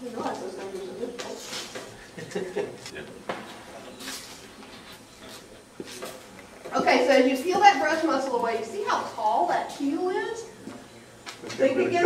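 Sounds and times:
quiet indistinct talking: 0:00.0 - 0:12.0.

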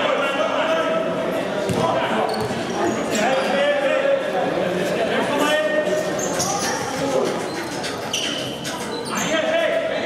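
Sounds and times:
players' voices: 0:00.0 - 0:10.0
shoe squeak: 0:02.2 - 0:03.6, 0:05.9 - 0:09.6.

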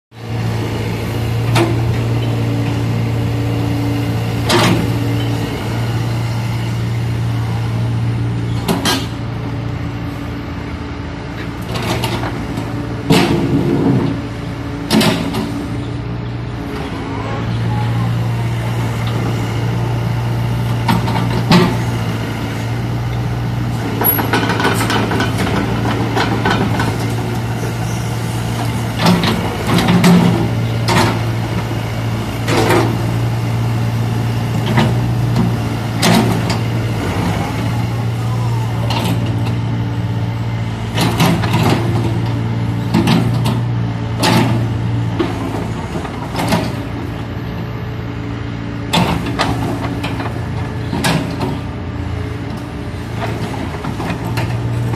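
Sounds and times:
excavator diesel engine running: 0:00.2 - 0:54.9.

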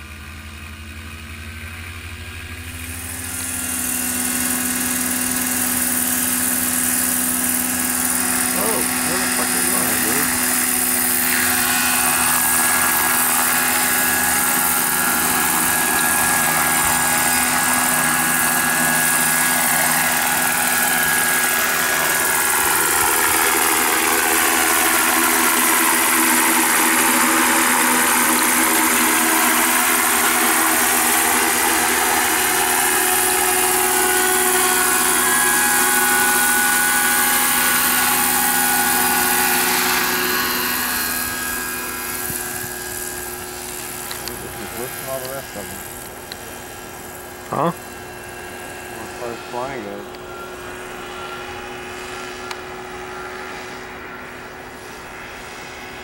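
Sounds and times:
model helicopter whining: 0:00.0 - 0:56.0.

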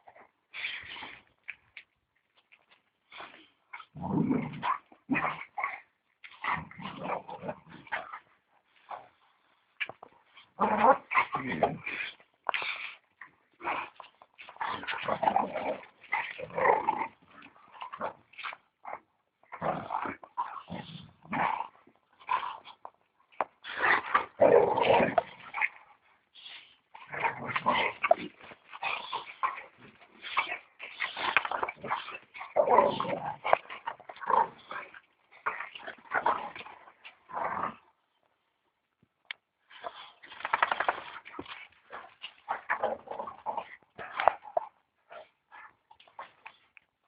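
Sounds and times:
dogs growling and whining: 0:03.2 - 0:09.1, 0:10.3 - 0:38.0.

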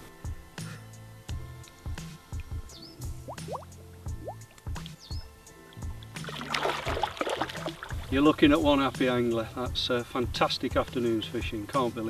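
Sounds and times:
background music with beat: 0:00.0 - 0:12.0
water splashing: 0:05.8 - 0:08.4.

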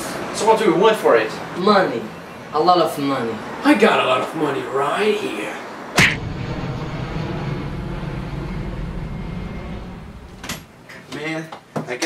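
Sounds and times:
jet airliner flying overhead: 0:06.2 - 0:10.4.

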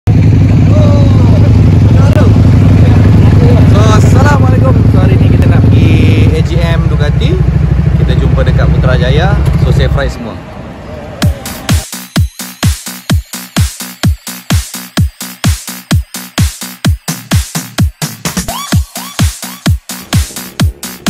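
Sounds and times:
motorcycle engines idling: 0:00.1 - 0:11.8.

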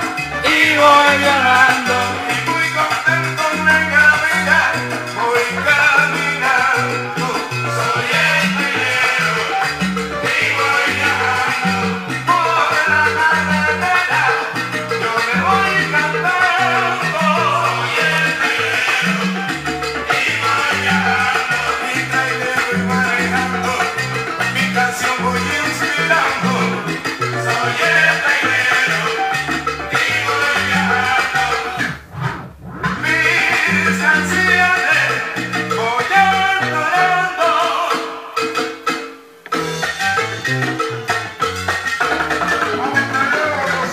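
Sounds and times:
instrumental salsa music: 0:00.0 - 0:43.9.

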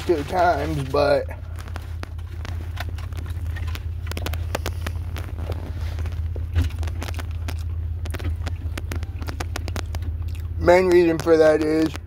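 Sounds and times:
car engine humming: 0:00.0 - 0:12.0
chewing and biting food: 0:00.6 - 0:11.2.

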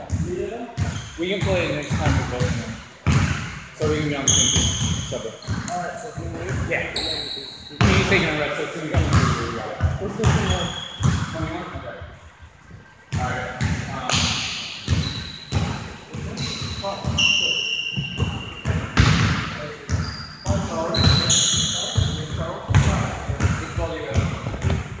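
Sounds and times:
people talking: 0:00.0 - 0:02.8, 0:03.8 - 0:12.1, 0:13.1 - 0:24.8
sneakers squeaking on wooden floor: 0:00.0 - 0:25.0
thuds of feet and ball: 0:22.7 - 0:25.0.

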